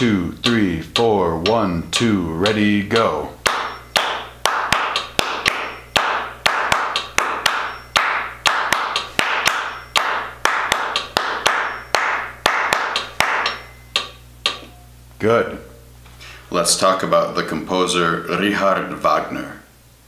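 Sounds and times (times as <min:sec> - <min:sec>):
hands clapping a rhythm: 0:00.0 - 0:14.7.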